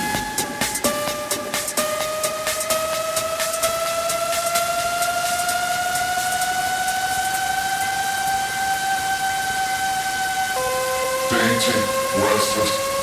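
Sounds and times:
noise wash: 0.0 - 13.0
rising synthesizer tone: 0.0 - 13.0.

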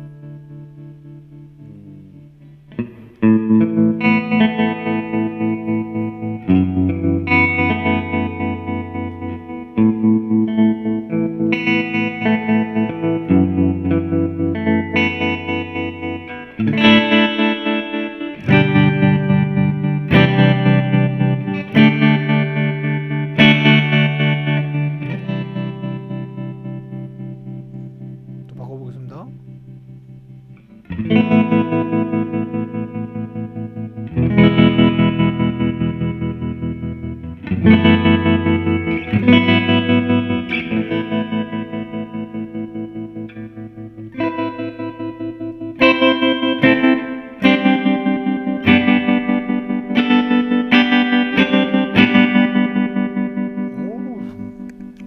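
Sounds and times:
electric guitar chords with tremolo: 0.0 - 55.0.

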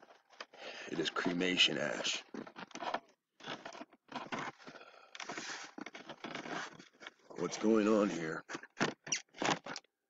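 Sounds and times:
rustling and scraping: 0.0 - 9.8.

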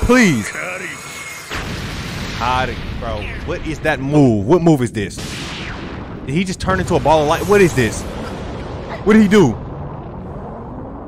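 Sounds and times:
electric thunder crash: 1.5 - 3.8, 5.2 - 10.9.

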